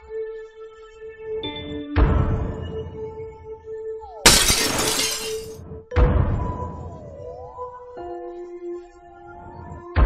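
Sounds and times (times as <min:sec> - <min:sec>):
glass shattering: 0:04.3 - 0:05.6.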